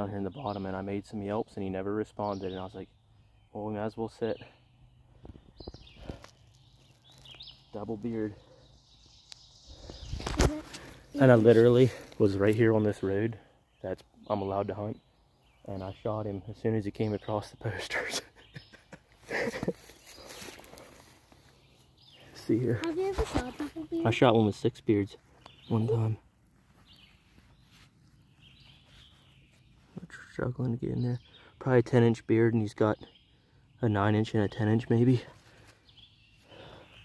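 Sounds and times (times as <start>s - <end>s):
faint songbird calls: 0.0s - 37.0s
sharp crackles: 5.5s - 8.0s, 9.1s - 12.7s
rustling in dry leaves: 5.9s - 7.6s, 9.2s - 12.6s, 19.2s - 24.2s, 25.2s - 30.0s.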